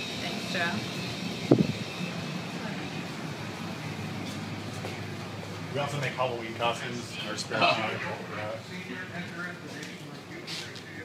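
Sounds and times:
steady low hum: 0:00.0 - 0:11.0
faint voices: 0:04.8 - 0:11.0.

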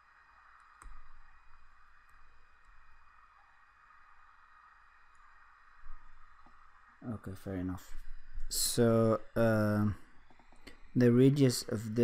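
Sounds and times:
steady hiss and low hum: 0:00.0 - 0:12.0
faint click: 0:00.6 - 0:01.2.

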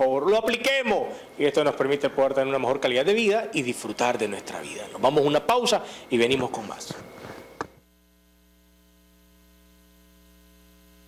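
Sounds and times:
faint electrical mains hum: 0:00.0 - 0:11.0.

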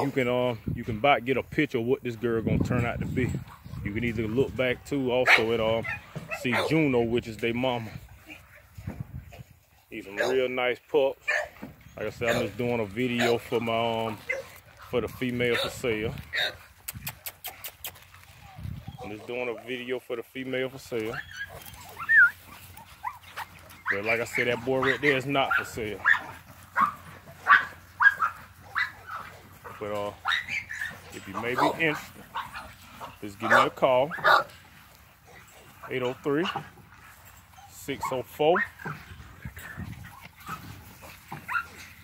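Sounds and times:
puppies yelping and whining: 0:13.2 - 0:19.7, 0:20.9 - 0:42.0
puppy whining: 0:17.1 - 0:19.2, 0:21.0 - 0:25.1
puppy squeaks: 0:21.1 - 0:22.4.

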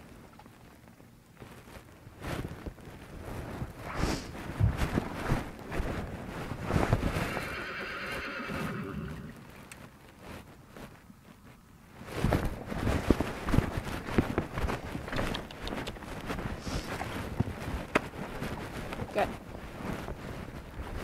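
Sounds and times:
rustling: 0:00.0 - 0:21.0
horse whinnying: 0:07.2 - 0:09.4.

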